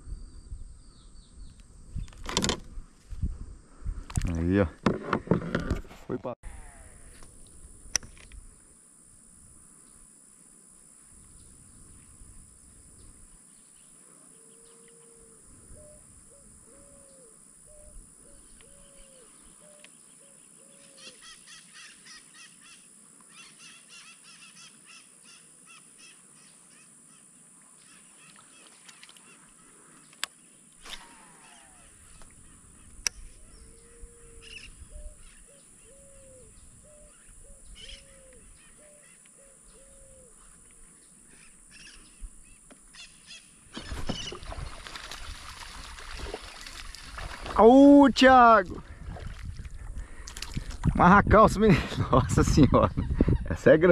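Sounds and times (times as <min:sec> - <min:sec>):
faint bird calls: 0:13.6 - 0:44.6.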